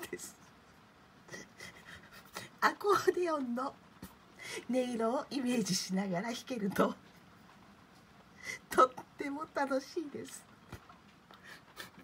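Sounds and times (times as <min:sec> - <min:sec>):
person laughing breathily: 0:01.3 - 0:02.6.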